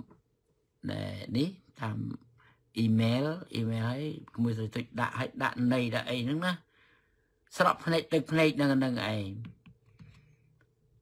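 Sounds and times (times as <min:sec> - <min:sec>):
man speaking: 0:00.8 - 0:06.7, 0:07.5 - 0:09.7.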